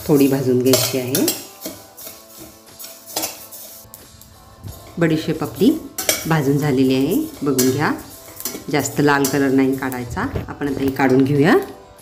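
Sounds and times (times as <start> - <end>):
metal spoon scraping pan: 0.0 - 11.4
soft background music: 0.0 - 12.0.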